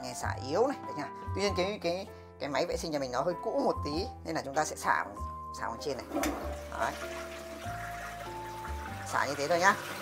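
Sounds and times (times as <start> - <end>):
background music: 0.0 - 10.0
toilet flushing: 6.0 - 10.0.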